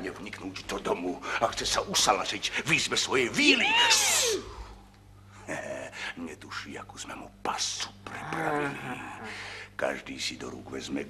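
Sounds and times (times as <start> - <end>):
whispered speech: 5.5 - 11.0.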